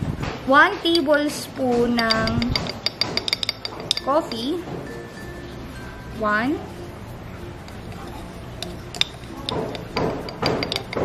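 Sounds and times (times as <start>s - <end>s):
spoon clinking on glass: 2.0s - 4.5s, 7.5s - 11.0s.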